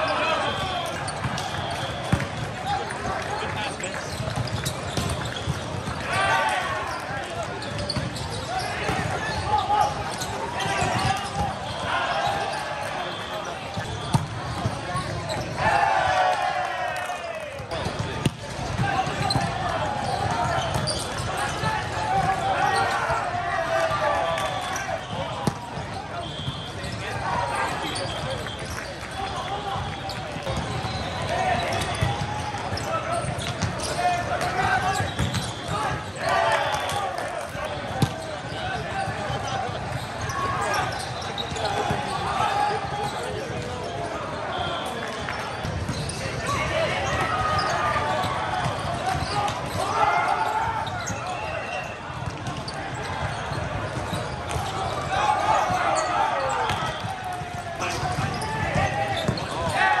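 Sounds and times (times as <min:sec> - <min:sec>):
crowd voices: 0:00.0 - 1:00.0
players shouting: 0:00.0 - 1:00.0.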